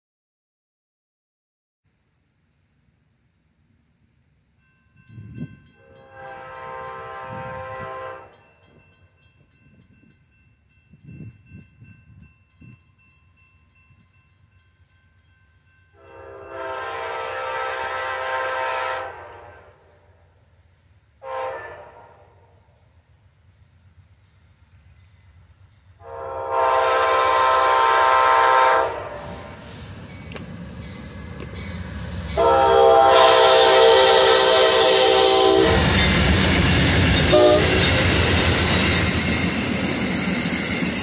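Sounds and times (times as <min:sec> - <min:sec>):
train air horn blasts: 0:05.8 - 0:08.5, 0:16.0 - 0:20.2, 0:21.2 - 0:22.7, 0:26.0 - 0:29.9, 0:32.3 - 0:36.3, 0:37.0 - 0:38.2.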